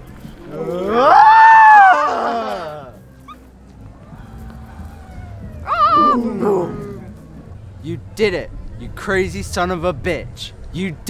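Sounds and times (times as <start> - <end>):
person voicing howling dinosaur calls: 5.0 - 7.2.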